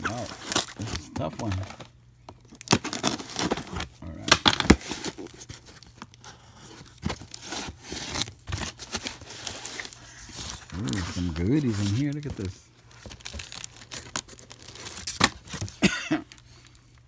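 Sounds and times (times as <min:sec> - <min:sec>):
tape tearing: 0:02.5 - 0:05.9, 0:13.0 - 0:15.8
cardboard scraping: 0:04.7 - 0:13.5.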